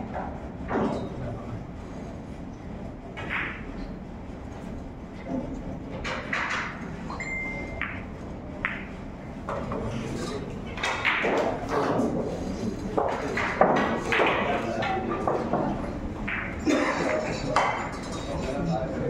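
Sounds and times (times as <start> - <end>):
pool balls clicking: 7.7 - 9.7, 10.7 - 12.2, 12.9 - 18.0
crowd chatter: 11.4 - 19.0.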